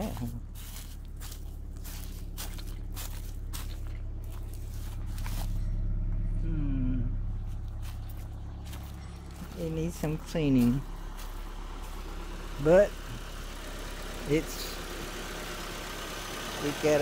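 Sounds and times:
footsteps crunching on dry leaves: 0.0s - 6.2s, 7.3s - 15.6s
car engine idling: 0.0s - 17.0s.

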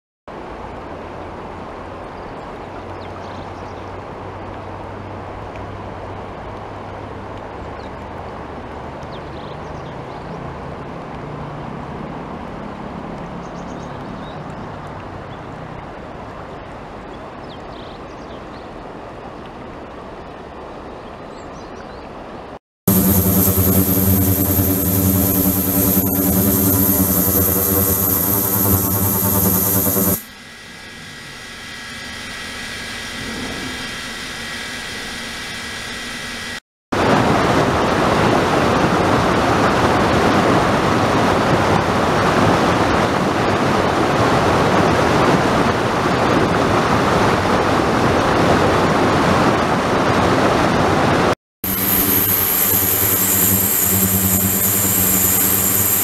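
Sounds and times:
pump motor hum and whine: 22.9s - 43.5s, 51.6s - 56.0s.

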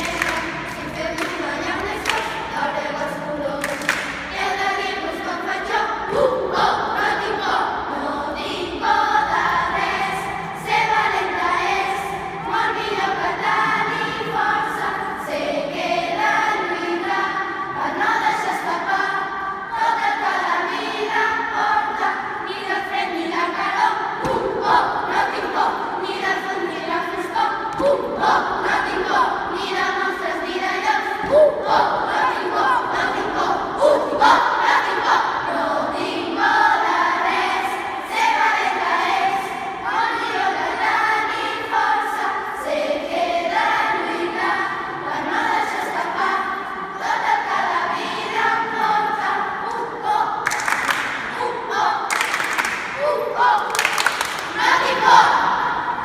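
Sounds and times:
children's choir singing: 0.0s - 56.0s.

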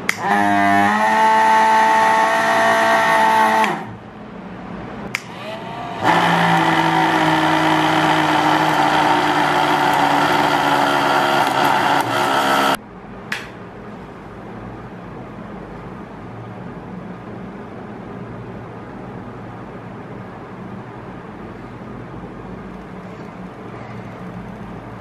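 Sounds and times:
small motor whining: 0.2s - 4.0s, 5.2s - 12.8s.

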